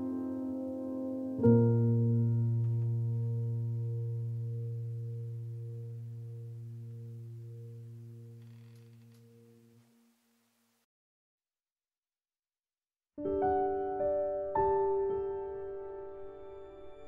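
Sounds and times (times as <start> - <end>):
low sustained piano chord: 0.0 - 9.8, 13.2 - 17.0.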